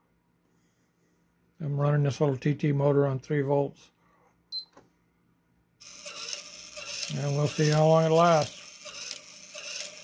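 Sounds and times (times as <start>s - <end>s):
timer beep: 4.5s - 4.8s
small motor running: 5.8s - 10.0s.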